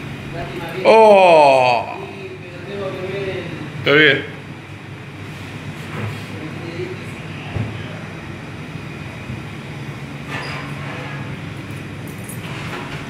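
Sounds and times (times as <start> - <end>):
pot at a rolling boil: 0.0 - 13.0.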